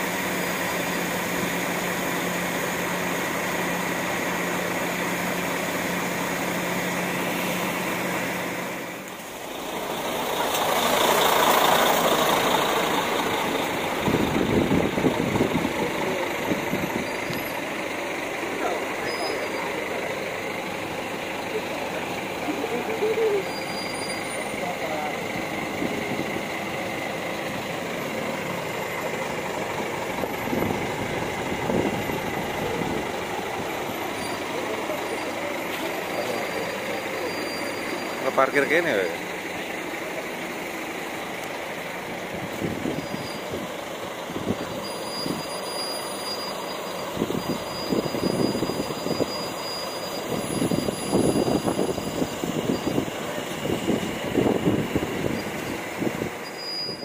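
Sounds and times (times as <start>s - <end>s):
diesel coach engines running: 0.0s - 57.0s.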